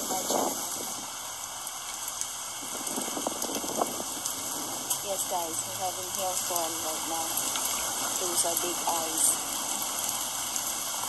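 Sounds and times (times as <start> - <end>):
hailstones ticking: 0.0 - 11.0
rain hissing on wet paving: 0.0 - 11.0.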